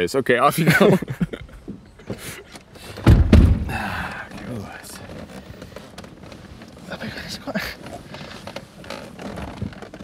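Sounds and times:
car door shutting: 2.9 - 4.3.

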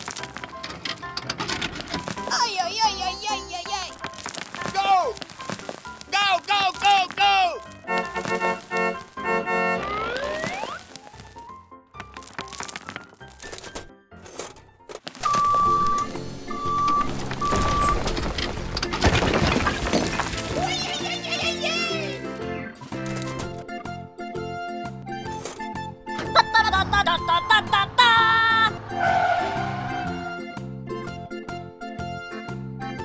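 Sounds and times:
rocks clattering from toy truck: 0.0 - 9.2, 12.0 - 21.1, 22.8 - 23.6
children's background music: 0.0 - 17.0, 20.4 - 33.0
rising glide effect: 9.8 - 10.8.

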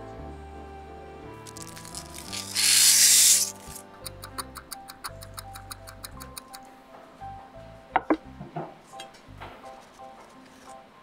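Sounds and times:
background music: 0.0 - 11.0
ticking clock: 4.0 - 6.6.

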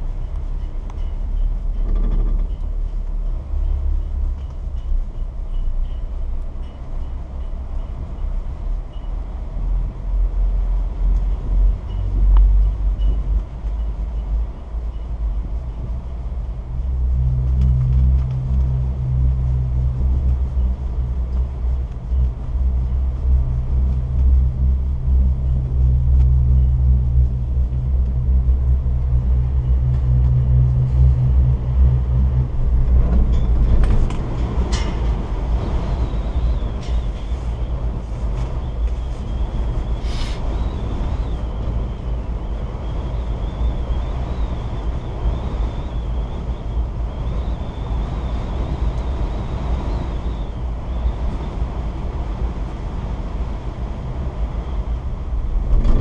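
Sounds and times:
rattles and knocks: 1.0 - 3.3, 32.8 - 35.4
chairlift rumble: 11.4 - 43.1.

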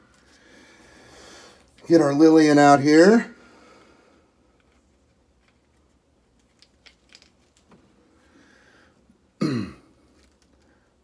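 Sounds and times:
man clearing his throat: 9.4 - 10.0.

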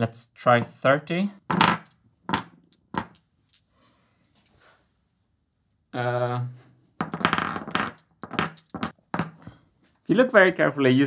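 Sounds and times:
marble clicking on table: 1.2 - 3.6, 7.0 - 9.4.

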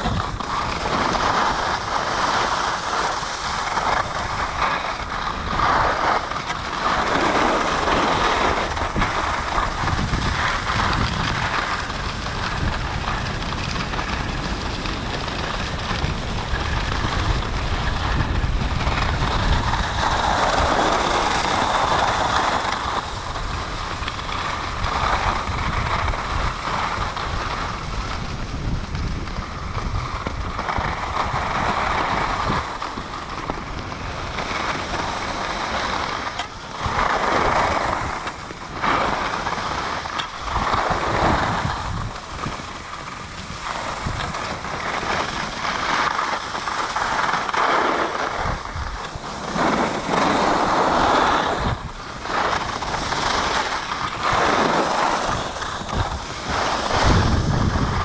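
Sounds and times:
skis scraping over snow: 0.0 - 58.0
wind buffeting microphone: 0.0 - 58.0.

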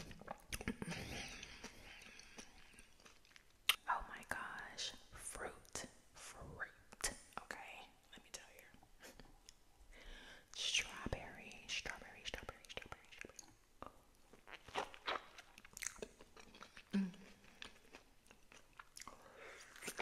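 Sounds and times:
wet chewing and lip smacks: 0.0 - 3.9, 12.6 - 20.0
person whispering: 3.7 - 8.8, 10.6 - 13.2.

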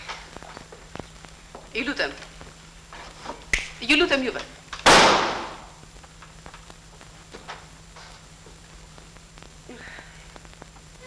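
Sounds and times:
loud sharp crack: 4.8 - 5.8.

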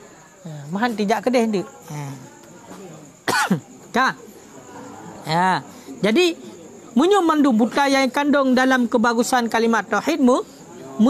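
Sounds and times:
man coughing: 3.2 - 3.6.

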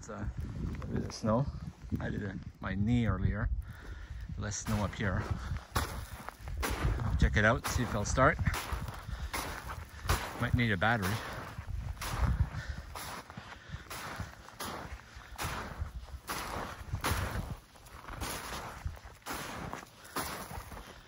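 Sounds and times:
footsteps in deep snow: 3.9 - 21.0.

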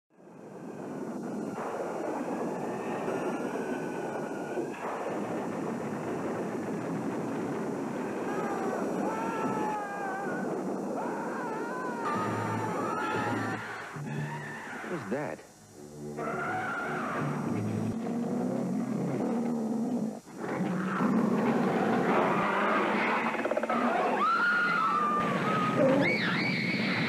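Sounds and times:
continuous rushing roar: 0.1 - 27.0.

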